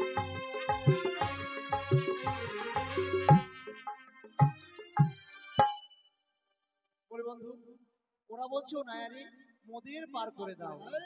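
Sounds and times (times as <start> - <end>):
low ringing percussion strikes: 0.0 - 6.0.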